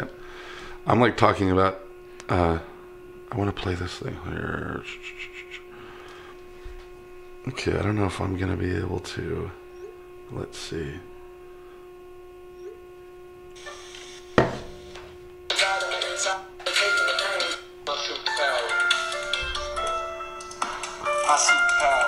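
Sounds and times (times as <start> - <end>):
steady hum: 0.0 - 22.0
song through phone speaker: 15.5 - 22.0.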